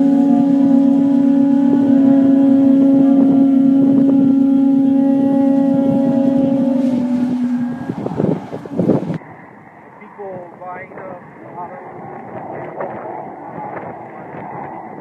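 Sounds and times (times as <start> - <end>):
conch shell trumpet blowing: 0.0 - 9.2.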